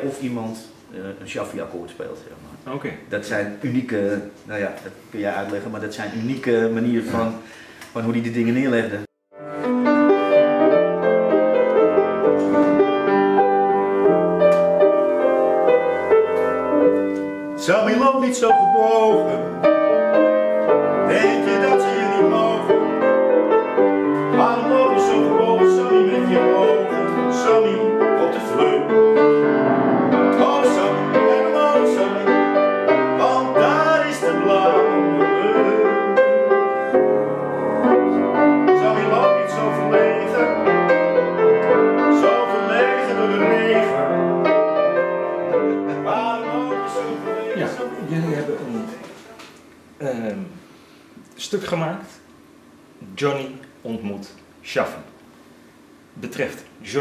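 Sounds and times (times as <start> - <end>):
solo grand piano: 9.3 - 49.4.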